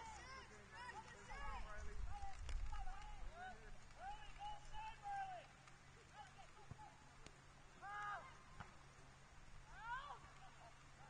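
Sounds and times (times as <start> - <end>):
distant shouts: 0.0 - 7.1, 7.7 - 8.8, 9.6 - 11.0.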